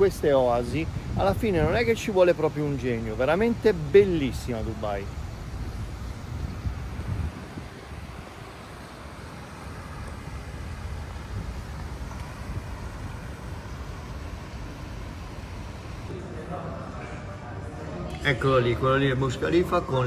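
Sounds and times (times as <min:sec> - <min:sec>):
wind buffeting microphone: 0:00.0 - 0:16.1
distant traffic rumble: 0:00.0 - 0:16.2.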